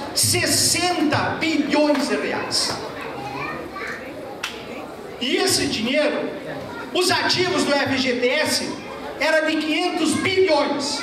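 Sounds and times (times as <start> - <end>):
faint audience voices: 0.0 - 11.0.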